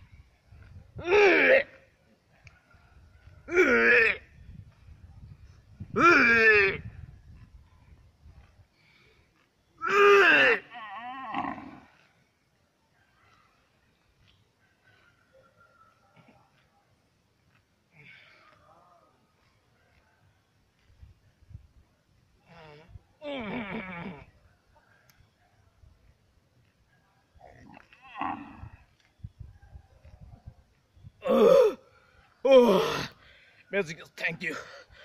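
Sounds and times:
man imitating animal call: 6.0s - 6.8s
person's strained throat sounds: 22.4s - 24.3s, 31.2s - 31.8s.

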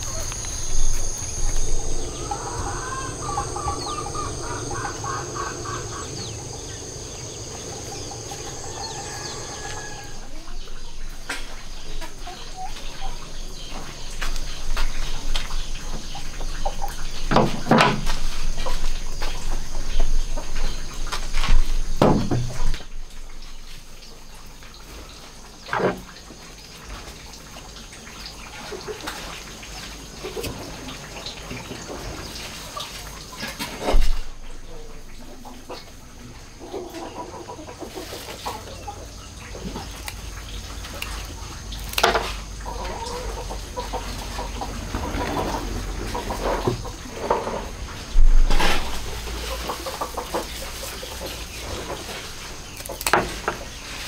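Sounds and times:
chickens clucking: 0.0s - 21.6s, 28.4s - 54.0s.

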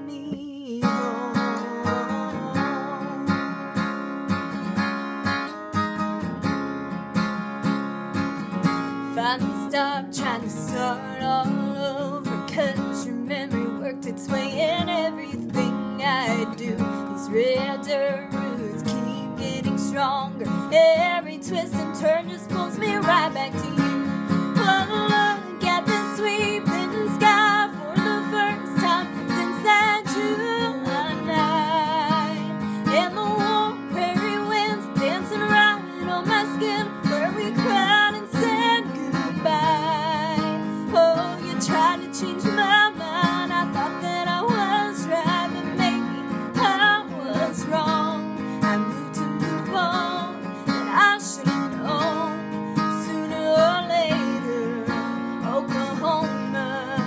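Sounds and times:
woman singing country ballad: 0.0s - 6.6s, 7.6s - 57.0s
strummed acoustic guitar: 0.0s - 57.0s.

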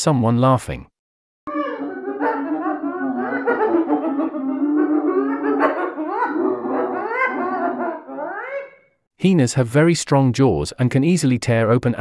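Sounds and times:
hyenas giggling: 1.5s - 8.8s.

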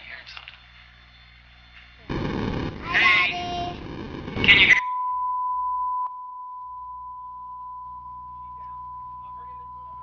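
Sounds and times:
steady test tone: 2.1s - 10.0s.

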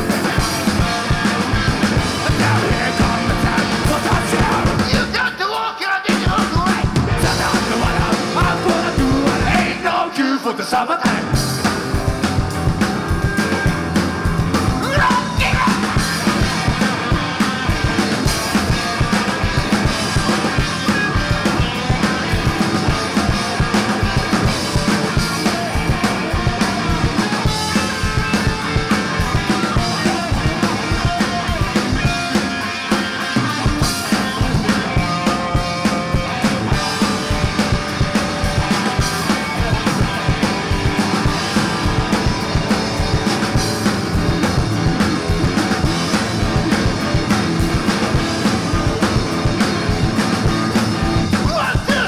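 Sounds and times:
bass guitar: 0.0s - 10.2s, 11.0s - 52.0s
distorted electric guitar: 0.0s - 10.3s, 11.1s - 52.0s
driving drum beat: 0.0s - 52.0s.

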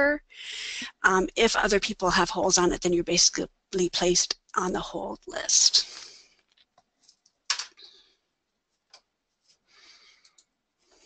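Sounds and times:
computer keyboard clicks: 7.1s - 7.8s.

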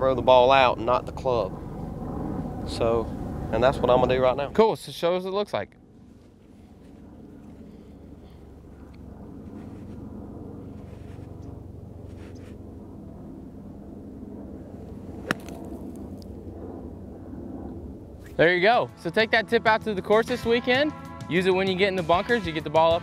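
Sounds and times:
low outdoor rumble: 0.0s - 20.1s
golf club striking sand: 15.1s - 16.3s.

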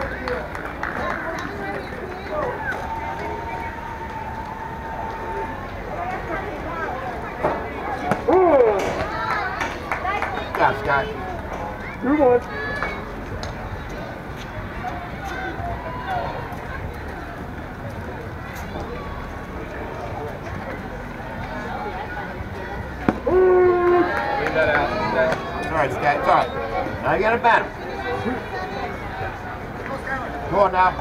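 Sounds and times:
people calling out and cheering: 0.0s - 31.0s.

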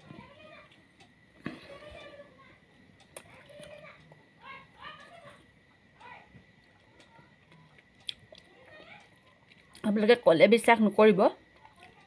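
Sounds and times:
children talking and playing: 0.0s - 9.9s, 11.4s - 12.0s.

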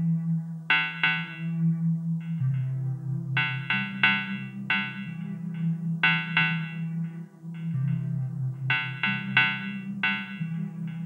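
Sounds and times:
synth bass line: 0.0s - 11.0s.

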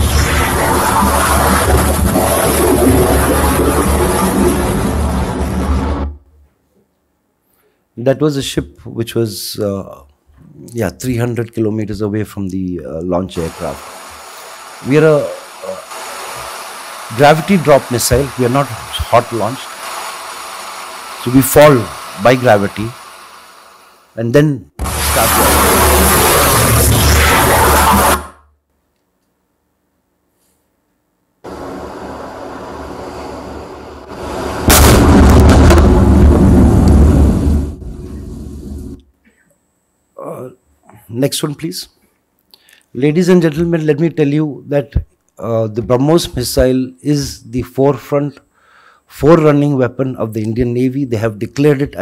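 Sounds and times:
rocket launch roar: 0.0s - 6.2s, 13.4s - 24.0s, 24.8s - 28.4s, 31.4s - 39.0s
deep rumble: 31.5s - 39.0s.

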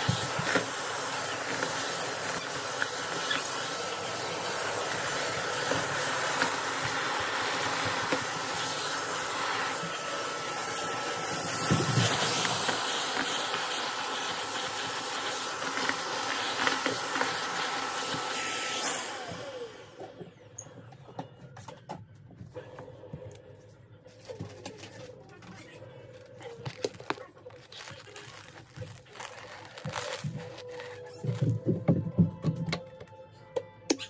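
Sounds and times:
vacuum cleaner running: 0.0s - 20.6s, 26.6s - 32.8s
debris rattling up vacuum wand: 26.4s - 31.8s.

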